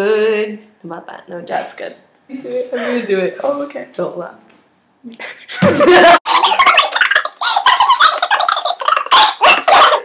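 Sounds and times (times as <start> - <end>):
women laughing loudly: 5.2 - 10.0.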